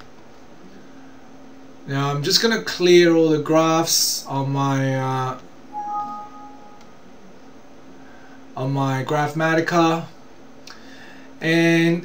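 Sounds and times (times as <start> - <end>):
rising two-note alert chime: 5.8 - 7.0.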